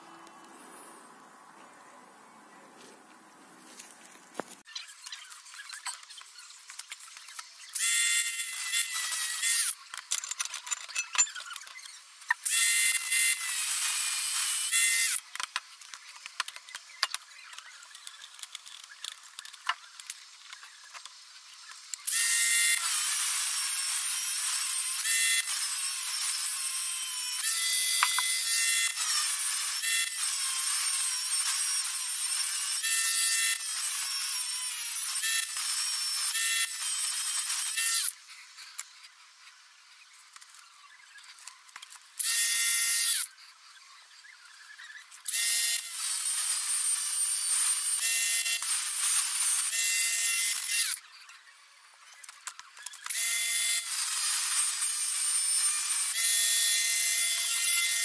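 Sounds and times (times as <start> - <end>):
angle grinder cutting steel: 7.7 - 9.8, 12.4 - 15.2, 22.0 - 38.2, 42.2 - 43.3, 45.3 - 51.0, 53.1 - 58.0.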